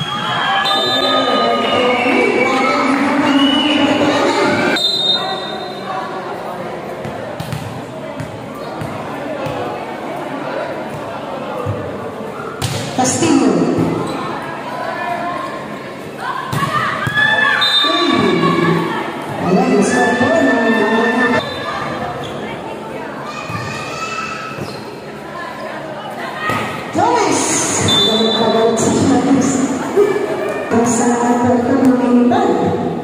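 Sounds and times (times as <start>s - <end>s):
players and spectators shouting: 0.0s - 6.2s, 14.3s - 22.2s
volleyball hits and bounces: 7.0s - 9.7s, 12.6s - 14.1s.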